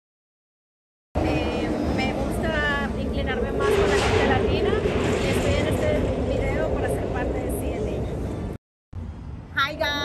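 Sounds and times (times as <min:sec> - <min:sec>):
woman speaking: 0:01.2 - 0:08.0, 0:09.6 - 0:10.0
engine noise: 0:01.2 - 0:09.5
wind rumble: 0:01.2 - 0:10.0.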